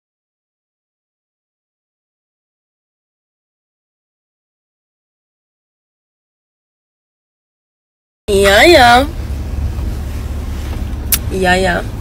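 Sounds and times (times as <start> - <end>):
car interior rumble: 8.3 - 12.0.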